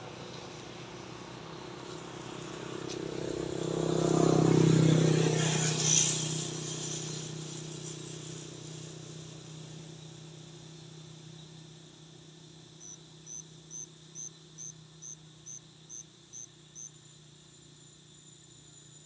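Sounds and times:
motor vehicle passing: 0.0 - 9.6.

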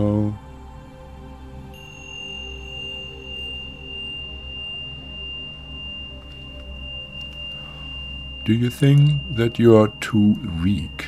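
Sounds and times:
low sustained drone: 0.0 - 11.0
high pure tone: 1.7 - 11.0.

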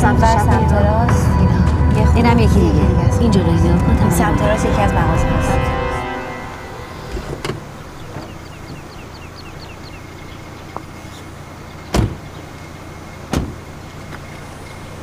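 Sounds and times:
steady low hum: 0.0 - 15.0
car doors shutting: 6.9 - 15.0.

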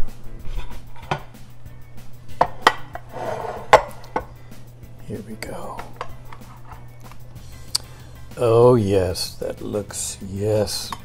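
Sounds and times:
plates and cutlery clinking: 2.4 - 4.4.

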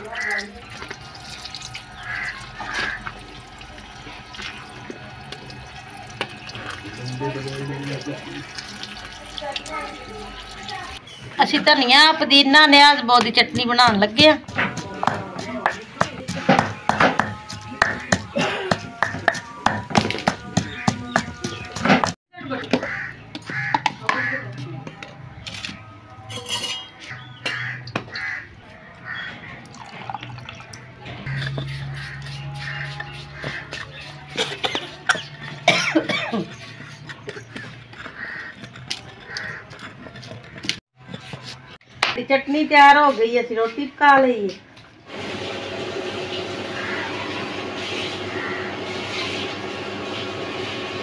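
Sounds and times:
pestle pounding in stone mortar: 13.2 - 24.3
music: 14.4 - 22.1, 23.9 - 36.5.

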